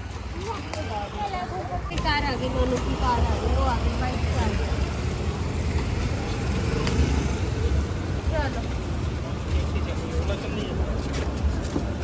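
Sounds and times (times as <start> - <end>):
street traffic rumble: 0.0 - 12.0.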